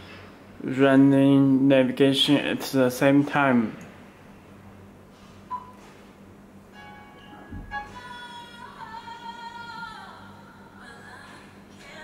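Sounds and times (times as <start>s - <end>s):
short touch beep: 5.5s - 5.8s.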